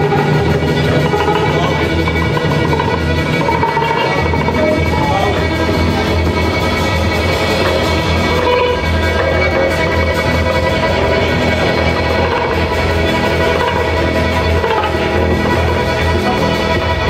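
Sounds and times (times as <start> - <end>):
live band playing: 0.0 - 17.0
low bass line: 0.0 - 17.0.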